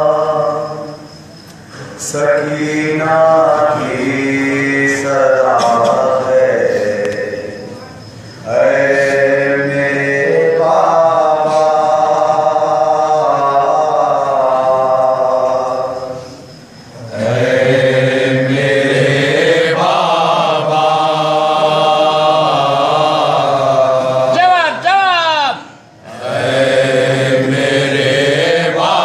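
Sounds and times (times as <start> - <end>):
men chanting a lament: 0.0 - 1.1, 1.8 - 29.0.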